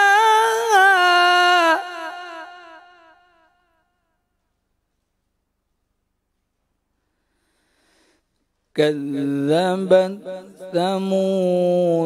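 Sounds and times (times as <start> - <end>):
echo of man's melodic recitation: 0.0 - 3.5, 8.7 - 12.0.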